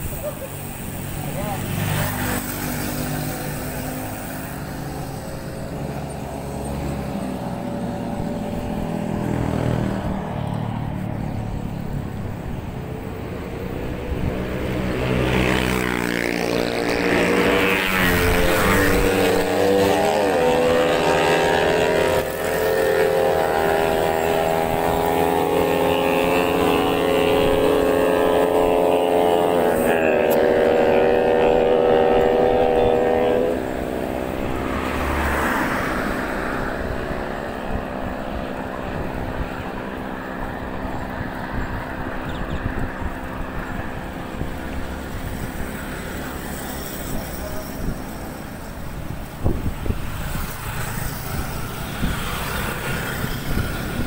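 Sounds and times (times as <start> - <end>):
wind rumble on microphone: 3.0 - 35.0, 35.6 - 54.0.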